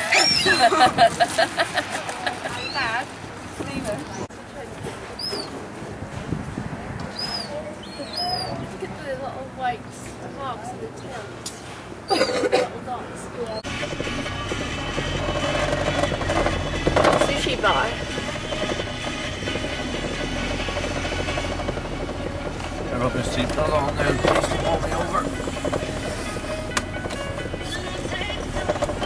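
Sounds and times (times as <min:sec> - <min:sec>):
gulls calling: 0:00.0 - 0:01.0, 0:02.4 - 0:03.0, 0:07.1 - 0:08.7
car engine and road rumble: 0:00.0 - 0:29.0.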